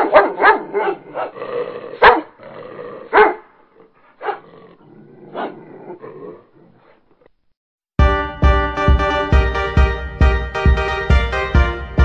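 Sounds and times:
dog barking: 0.0 - 1.4, 2.0 - 2.4, 3.1 - 4.5, 5.3 - 5.7.

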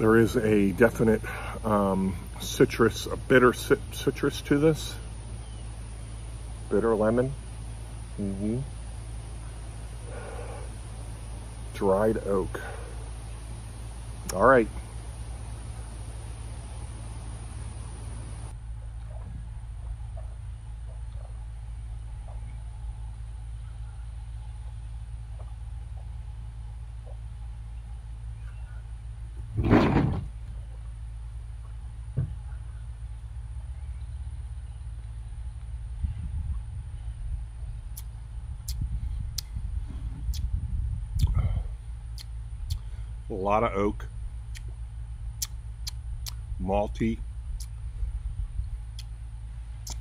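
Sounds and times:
low rumble: 3.0 - 50.0.

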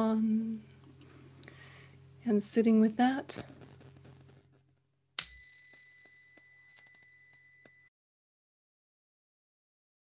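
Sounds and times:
small bell ringing: 5.2 - 7.9.

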